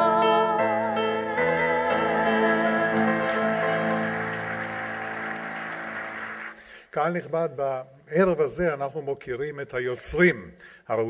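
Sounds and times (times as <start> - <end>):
applause: 2.7 - 6.9.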